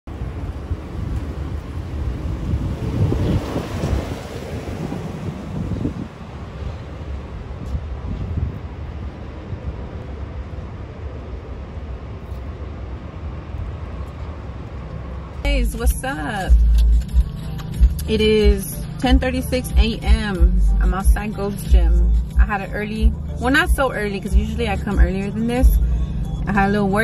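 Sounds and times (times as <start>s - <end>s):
wind buffeting microphone: 0.1s - 27.0s.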